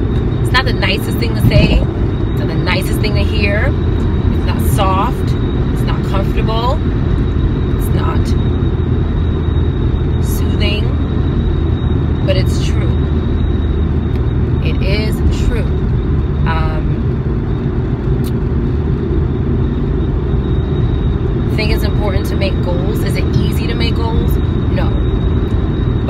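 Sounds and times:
road and engine rumble: 0:00.0 - 0:26.0
woman's voice: 0:00.5 - 0:03.8, 0:04.4 - 0:06.8, 0:07.8 - 0:08.4, 0:10.2 - 0:11.0, 0:12.2 - 0:13.0, 0:14.6 - 0:15.8, 0:16.4 - 0:17.0, 0:21.5 - 0:25.0.

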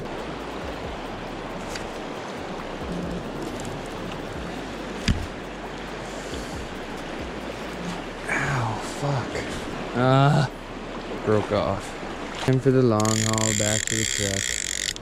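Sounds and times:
flowing river water: 0:00.0 - 0:15.0
fishing reel handle knocking: 0:13.0 - 0:15.0.

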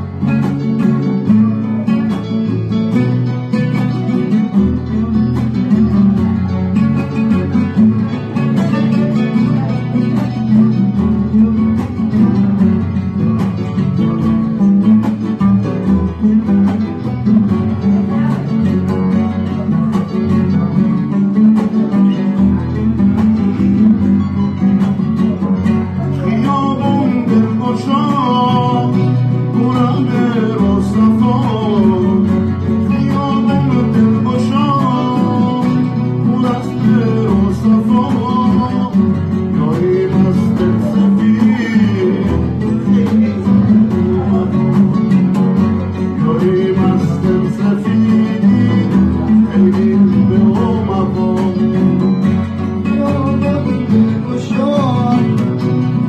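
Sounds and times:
acoustic guitar plucking: 0:00.0 - 0:56.0
keyboard accompaniment: 0:00.0 - 0:56.0
oud plucking melody: 0:00.0 - 0:56.0.

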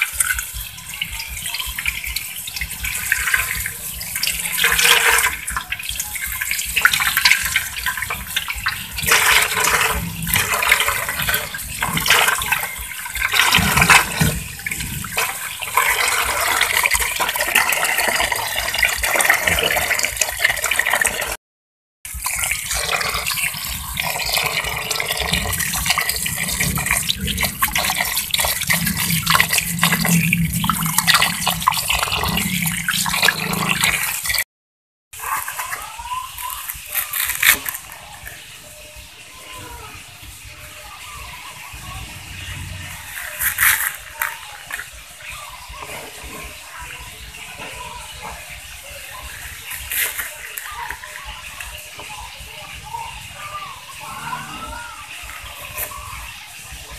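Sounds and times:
tap water pouring into metal bowl: 0:00.0 - 0:21.4, 0:22.1 - 0:34.4, 0:42.9 - 0:52.7.

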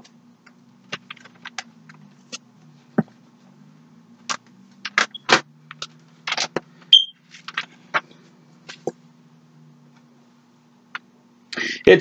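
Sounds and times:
steady low hum: 0:00.0 - 0:12.0
thin pages turning: 0:07.3 - 0:07.8.

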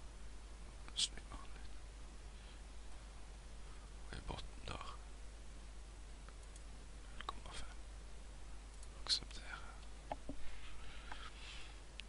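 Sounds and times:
steady background hiss: 0:00.0 - 0:12.0
computer mouse clicks: 0:06.3 - 0:06.7.

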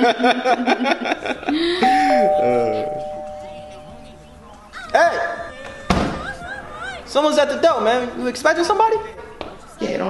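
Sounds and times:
two-note doorbell chime: 0:01.8 - 0:04.4.

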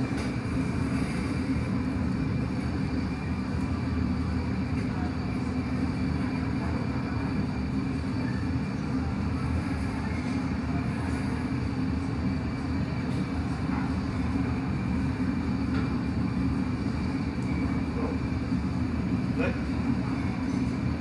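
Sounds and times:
gas furnace roaring: 0:00.0 - 0:21.0.

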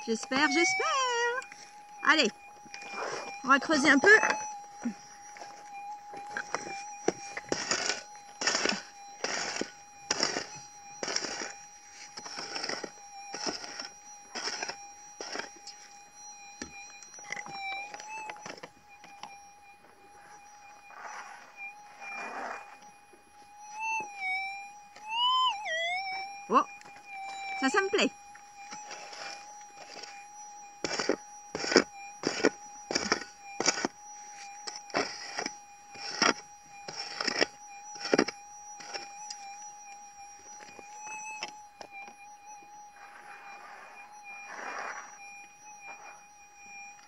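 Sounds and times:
metal detector tone: 0:00.0 - 0:47.0.

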